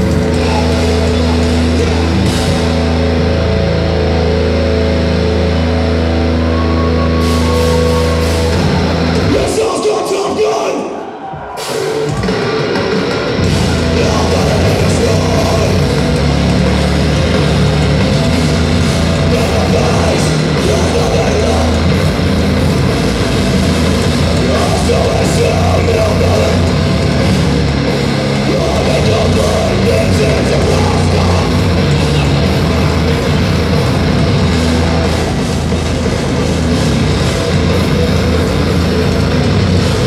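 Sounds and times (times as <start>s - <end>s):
bass guitar: 0.0s - 9.7s, 11.6s - 40.0s
distorted guitars: 0.0s - 40.0s
drums: 0.0s - 40.0s
metal band playing live: 0.0s - 40.0s.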